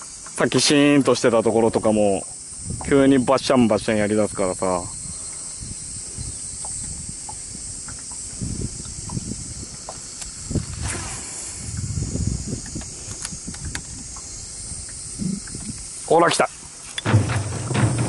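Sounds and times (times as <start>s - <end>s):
high insect chorus: 0.0s - 18.0s
wind rumble on microphone: 2.6s - 16.0s.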